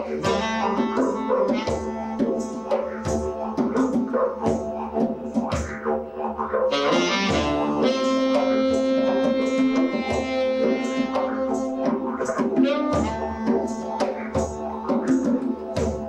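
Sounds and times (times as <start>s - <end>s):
saxophone holding long notes: 0.0s - 5.2s, 6.7s - 16.0s.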